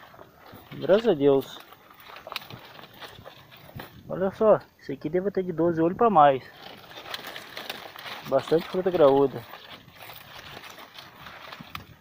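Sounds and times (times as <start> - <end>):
straw and leaves crackling: 0.0 - 12.0.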